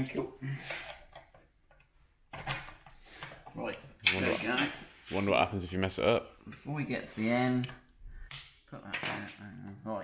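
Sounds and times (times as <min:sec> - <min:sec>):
man talking: 0:03.5 - 0:07.8, 0:08.7 - 0:10.0.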